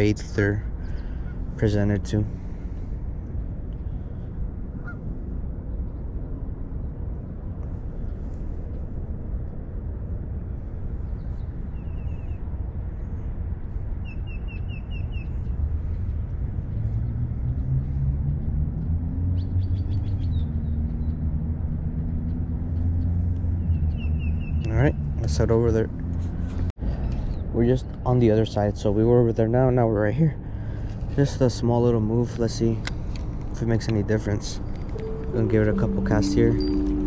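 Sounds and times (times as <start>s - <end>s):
birds calling: 0.0s - 2.8s, 22.1s - 24.8s
low engine-like drone: 0.0s - 37.0s
low outdoor rumble: 0.0s - 37.0s.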